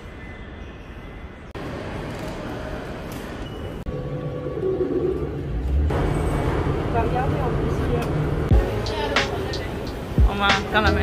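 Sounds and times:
rail carriage rumble: 1.2s - 11.0s
voices: 6.9s - 11.0s.

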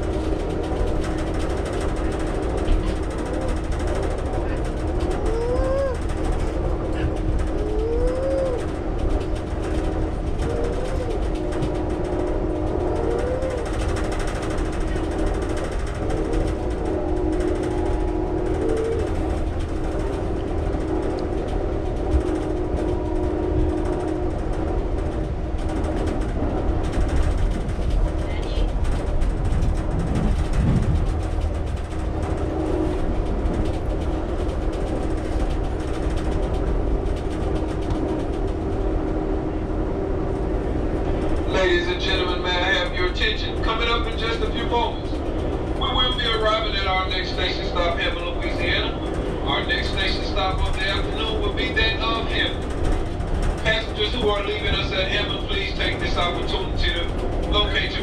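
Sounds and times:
steady train hum: 0.0s - 58.0s
train wheels rumbling on rails: 0.0s - 58.0s.

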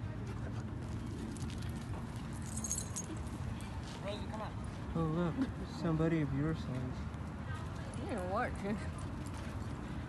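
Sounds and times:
high tinkling: 2.4s - 3.2s.

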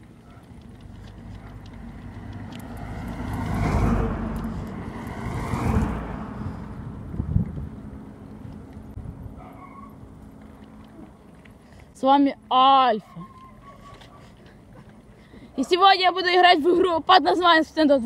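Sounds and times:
car passing: 0.8s - 11.0s.

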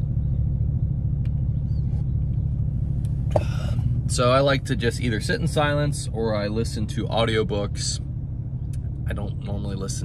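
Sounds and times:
pickup truck rumble: 0.0s - 10.0s.

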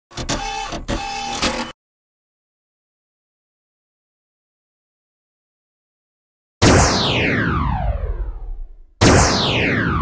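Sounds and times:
sharp hits: 6.6s - 10.0s.

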